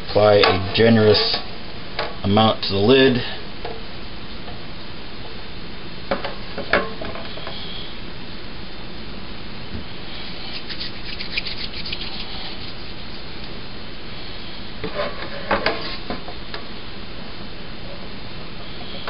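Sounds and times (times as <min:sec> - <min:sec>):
steady hiss: 0:00.0 - 0:19.0.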